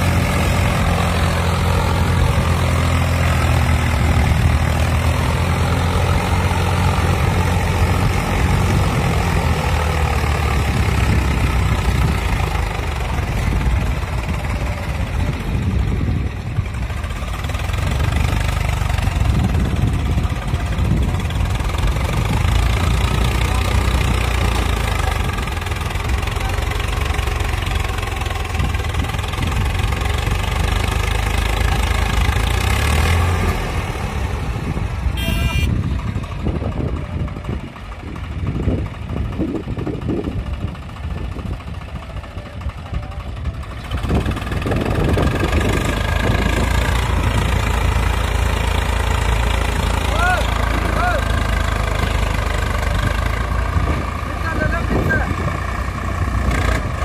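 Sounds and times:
diesel tractor engine under load: 0.0 - 57.0.

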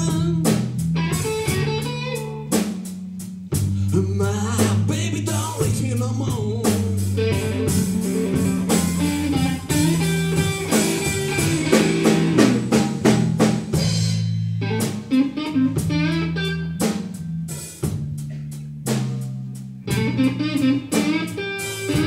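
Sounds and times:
electric guitar blues lines: 0.0 - 2.9, 3.8 - 12.8, 14.5 - 19.0, 19.8 - 22.0
bass line: 0.0 - 22.0
drum kit: 0.0 - 22.0.

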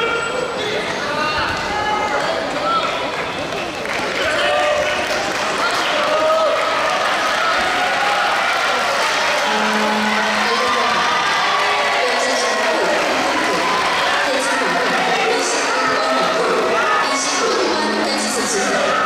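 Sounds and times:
crowd shouting and cheering: 0.0 - 19.0.

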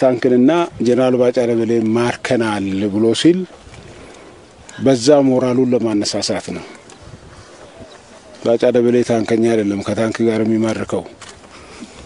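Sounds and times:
man speaking: 0.0 - 3.6, 4.7 - 6.8, 7.8 - 11.2
faint outdoor background: 0.0 - 12.0.

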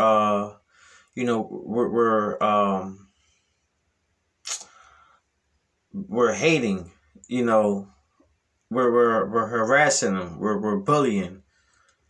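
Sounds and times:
faint breathy hiss: 0.0 - 9.2, 11.4 - 12.0
sharp click: 4.4 - 4.8.

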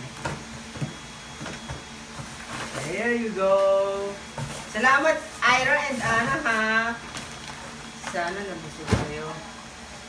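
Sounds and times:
wrapping paper rustling and tearing: 4.4 - 7.6.

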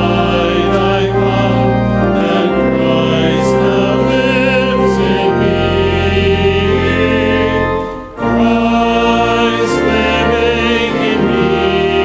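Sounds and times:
choir singing a hymn: 0.0 - 12.0
organ notes: 0.0 - 12.0.

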